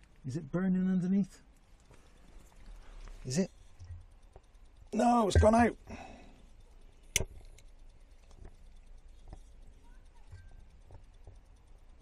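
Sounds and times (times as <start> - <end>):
metal stove ticks and knocks: 3.7 - 12.0.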